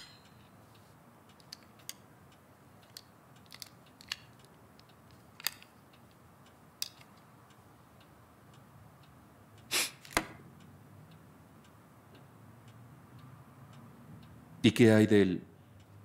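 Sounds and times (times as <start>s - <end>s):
small sharp clicks and taps: 6.8s - 7.3s.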